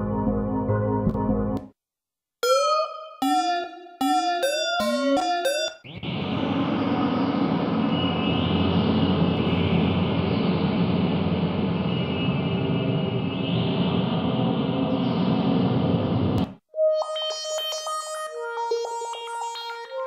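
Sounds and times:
short synth notes with bending pitch: 0:02.4 - 0:11.0
noisy synthesizer drone: 0:02.4 - 0:16.5.

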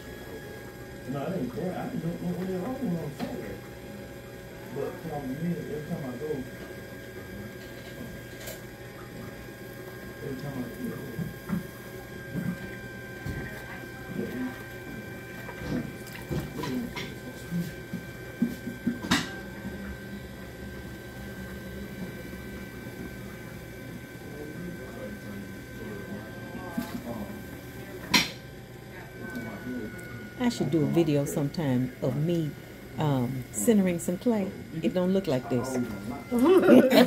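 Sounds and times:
pottery wheel whine: 0:00.0 - 0:37.0.

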